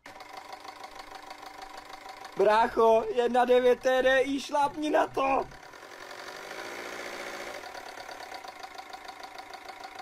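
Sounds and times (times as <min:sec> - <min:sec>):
hand mixer motor rattling: 0:00.1 - 0:04.2, 0:04.9 - 0:10.0.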